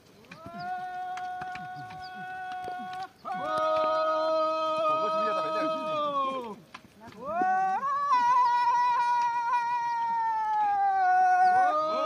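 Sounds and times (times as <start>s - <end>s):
animal wailing calls: 7.2s - 12.0s.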